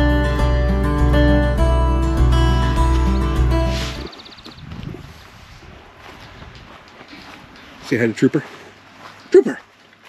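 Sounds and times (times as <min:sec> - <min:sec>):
outdoor ambience: 0:00.0 - 0:10.0
footsteps on grass: 0:02.6 - 0:10.0.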